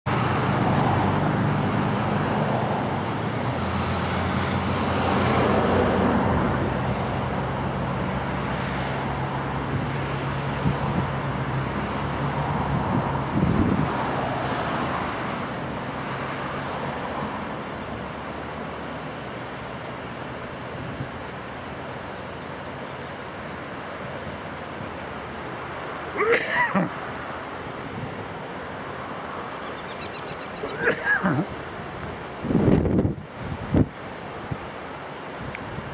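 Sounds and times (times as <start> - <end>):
engine rumble: 0.1 - 35.9
outdoor noise: 0.1 - 35.9.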